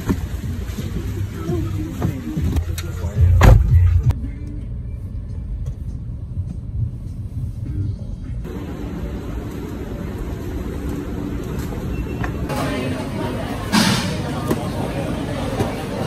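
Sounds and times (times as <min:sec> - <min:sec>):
car cabin rumble: 0:01.6 - 0:04.1.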